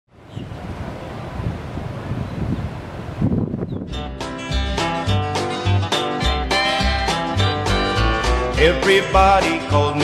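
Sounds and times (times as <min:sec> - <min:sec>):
wind buffeting microphone: 0:00.1 - 0:04.2.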